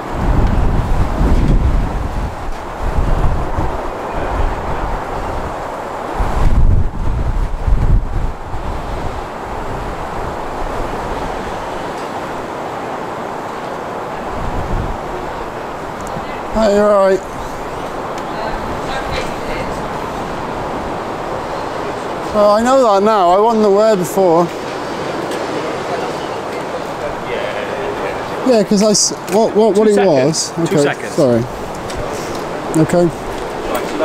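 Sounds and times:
outdoor rushing noise: 0.0s - 34.0s
wind buffeting microphone: 0.0s - 34.0s.

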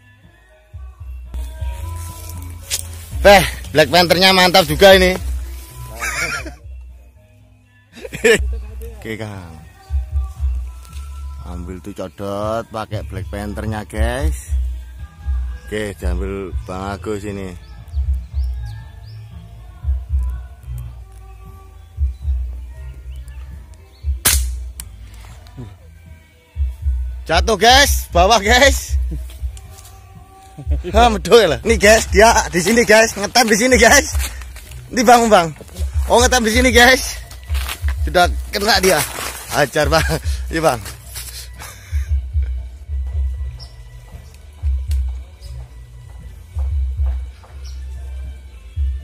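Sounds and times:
music with deep repeating beat: 0.8s - 7.0s, 9.9s - 11.6s, 13.0s - 21.3s, 21.9s - 25.8s, 26.6s - 49.0s
air rifle shot: 24.2s - 24.7s
sharp click: 24.2s - 24.9s.

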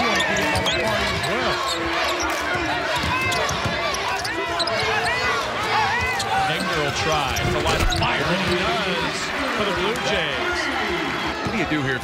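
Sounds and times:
sneakers squeaking on hardwood: 0.0s - 8.3s
basketball dribbling: 0.0s - 8.8s.

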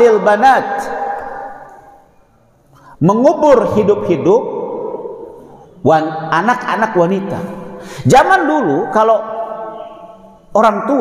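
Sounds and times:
man speaking: 0.0s - 1.7s, 3.0s - 5.2s, 5.8s - 11.0s.

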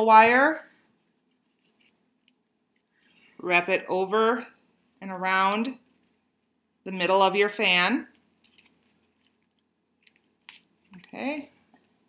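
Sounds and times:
paper crinkling: 8.1s - 12.0s.

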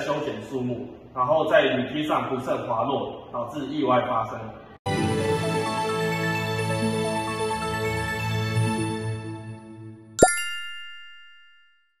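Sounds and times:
bright bell-like chime: 10.2s - 12.0s.

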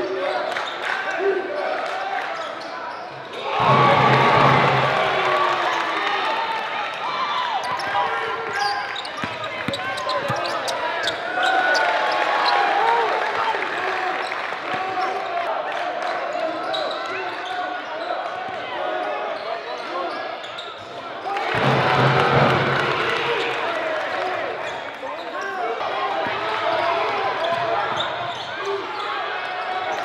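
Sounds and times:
voices of players and spectators: 0.0s - 30.0s
sneakers squeaking: 7.6s - 11.9s, 16.6s - 18.6s, 19.7s - 21.0s, 27.4s - 30.0s.

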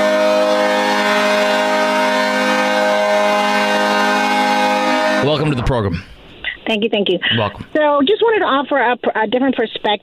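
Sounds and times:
horn chord: 0.0s - 5.8s.

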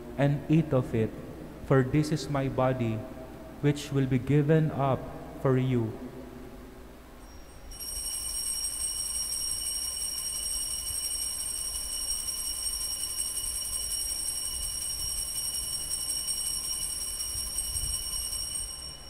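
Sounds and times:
altar bells ringing: 7.2s - 19.0s.

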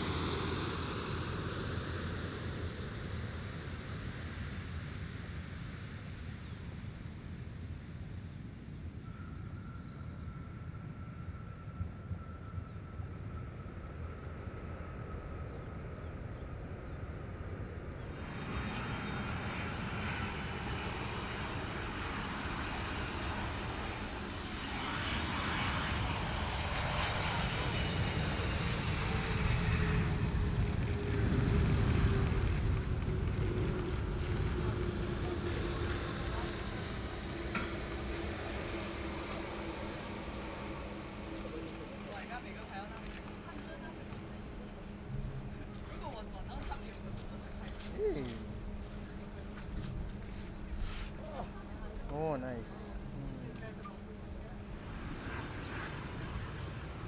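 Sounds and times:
jet engine whine falling in pitch: 0.0s - 57.0s
jet engines roaring on landing: 12.1s - 57.0s.

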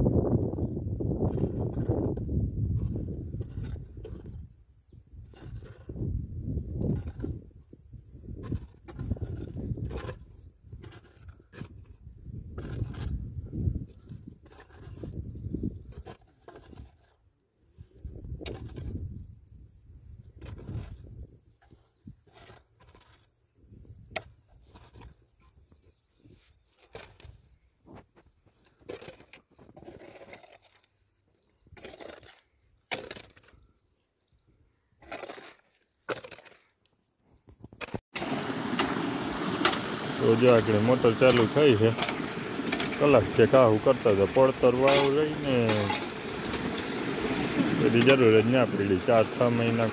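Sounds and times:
hand hoes chopping soil: 26.8s - 30.9s, 31.8s - 33.6s, 35.0s - 36.8s, 37.6s - 49.9s.

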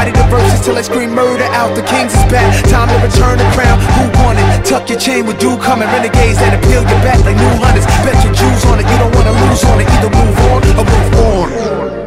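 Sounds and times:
hip hop music: 0.0s - 12.0s.

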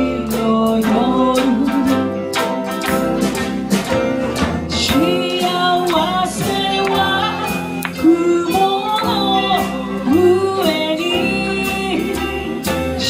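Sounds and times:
woman singing: 0.0s - 2.6s, 4.7s - 13.0s
bass: 0.0s - 13.0s
plucked string instruments: 0.0s - 13.0s.

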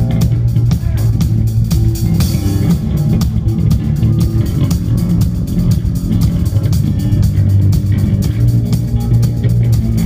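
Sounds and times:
bass guitar: 0.0s - 10.0s
drum and cymbal hits: 0.0s - 10.0s
electric guitar: 0.0s - 10.0s.

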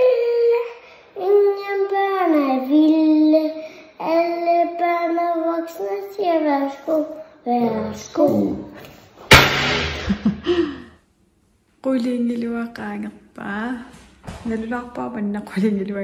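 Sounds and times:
young child singing: 0.0s - 8.5s.

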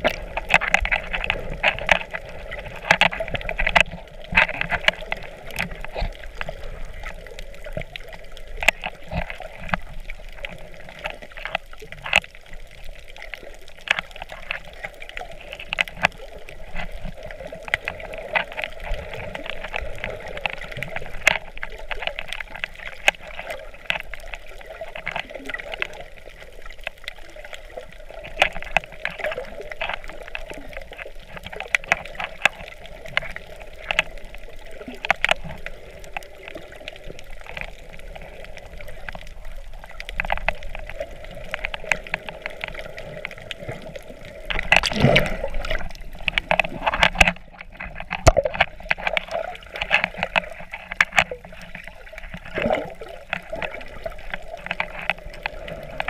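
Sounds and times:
muffled underwater water wash: 0.0s - 56.0s
surge of water: 0.0s - 56.0s.

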